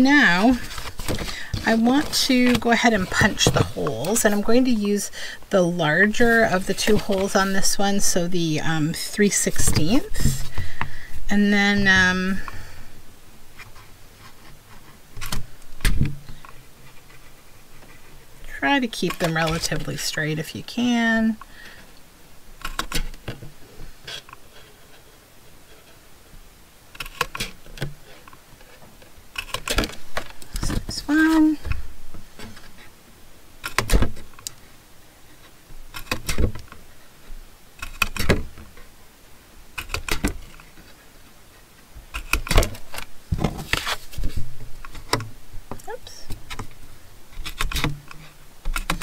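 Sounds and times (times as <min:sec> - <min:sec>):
card shuffling: 0:00.2 - 0:04.6, 0:42.3 - 0:45.0.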